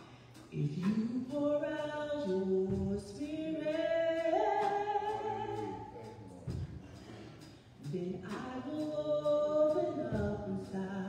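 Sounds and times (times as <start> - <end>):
woman singing a hymn: 0.0 - 6.6, 7.8 - 11.0.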